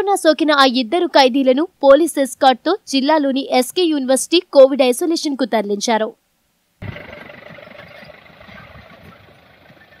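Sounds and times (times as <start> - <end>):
jeep engine driving away: 6.8 - 10.0.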